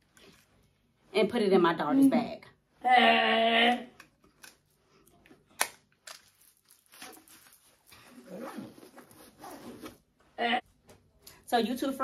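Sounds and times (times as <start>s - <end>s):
zipper on fabric backpack: 8.1s - 10.0s.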